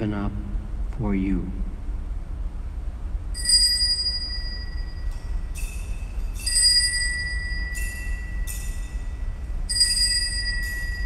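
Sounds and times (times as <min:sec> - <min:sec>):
altar bells ringing: 0:03.4 - 0:11.0.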